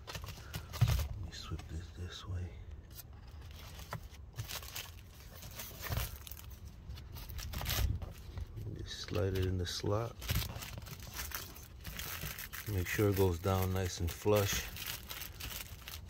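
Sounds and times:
plastic wrapping crinkling and tearing: 0:03.5 - 0:16.0.

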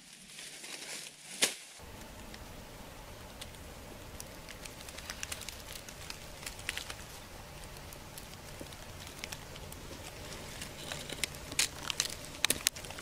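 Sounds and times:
crackles of dry leaves and twigs: 0:00.0 - 0:13.0
low forest background: 0:00.0 - 0:13.0
sharp crinkle: 0:00.0 - 0:13.0.

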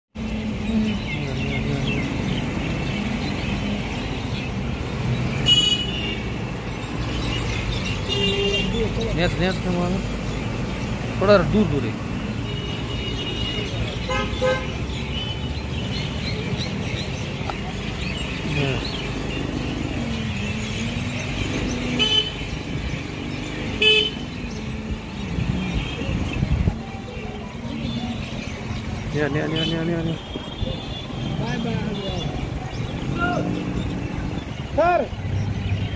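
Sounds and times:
traffic rumble: 0:00.1 - 0:35.9.

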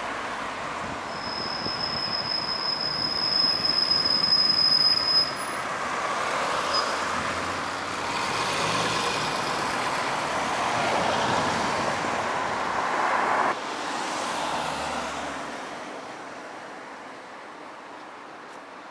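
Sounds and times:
traffic noise: 0:00.0 - 0:18.9
high-pitched metal squeal: 0:01.1 - 0:05.6.

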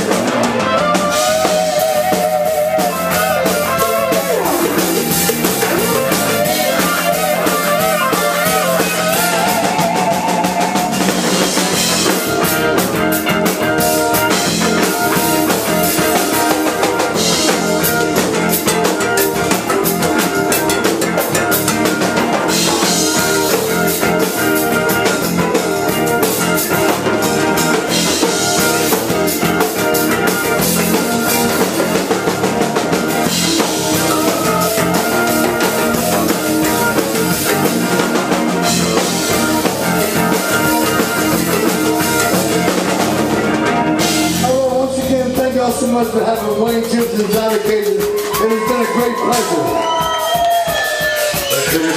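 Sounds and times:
bass guitar: 0:00.0 - 0:51.9
drum kit: 0:00.0 - 0:51.9
electric guitar lead: 0:00.0 - 0:51.9.

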